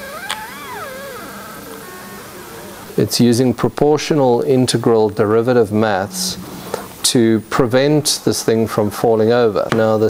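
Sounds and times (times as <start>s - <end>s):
stepper motors whining: 0.0s - 9.7s
faint steady hum: 0.0s - 10.0s.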